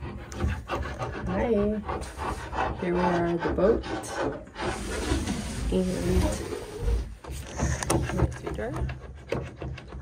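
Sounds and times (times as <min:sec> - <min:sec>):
rubbing and clicking handling noise: 0:00.0 - 0:10.0.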